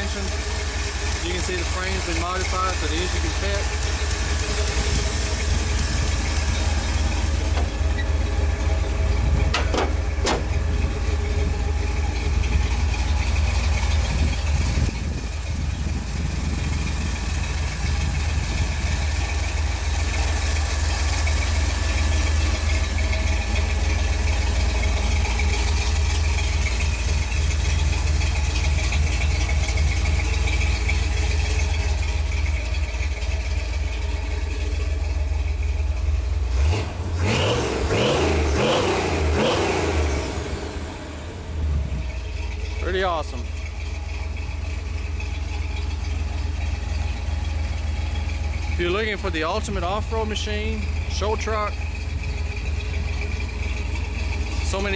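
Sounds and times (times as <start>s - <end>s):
engine exhaust rumbling: 0.0s - 54.9s.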